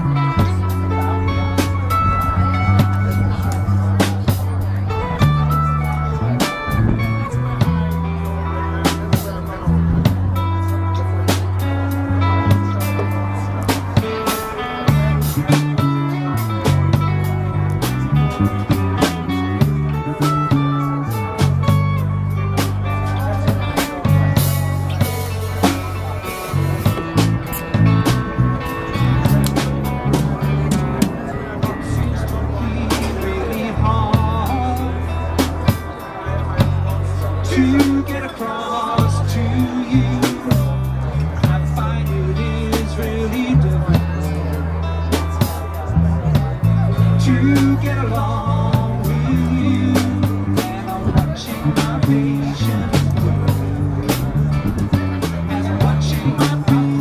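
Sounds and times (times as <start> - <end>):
acoustic guitar: 0.0 - 57.0
drum kit with cymbal hits: 0.0 - 57.0
electric bass: 0.0 - 57.0
plucked strings: 0.0 - 57.0.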